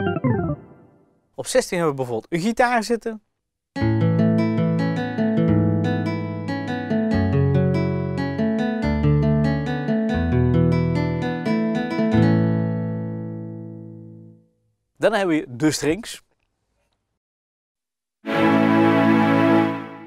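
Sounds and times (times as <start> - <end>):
keyboard playing guitar chords: 0.0 - 1.0, 3.8 - 14.4.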